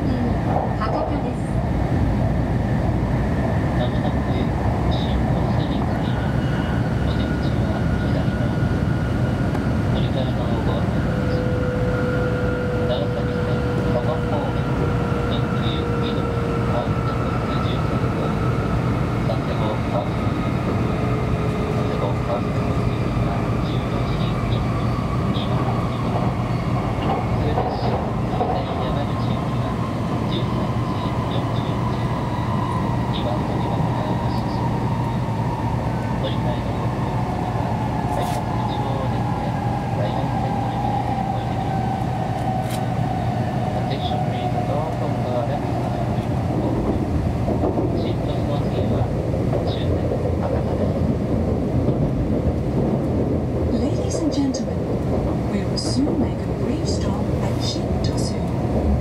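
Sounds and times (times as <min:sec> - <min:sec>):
train rumble and rush: 0:00.0 - 0:59.0.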